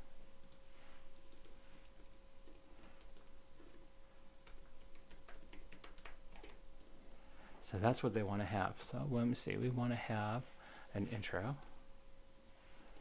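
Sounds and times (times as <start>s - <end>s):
keyboard typing: 1.2s - 6.9s.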